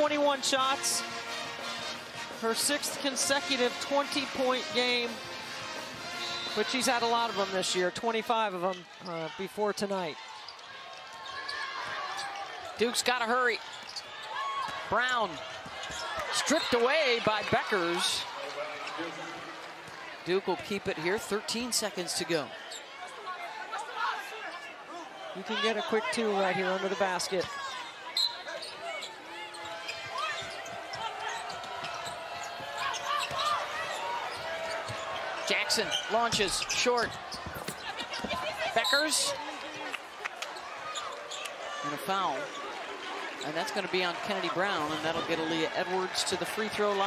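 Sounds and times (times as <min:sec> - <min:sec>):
arena crowd noise: 0:00.0 - 0:47.0
shoes squeaking on hardwood: 0:28.2 - 0:39.3.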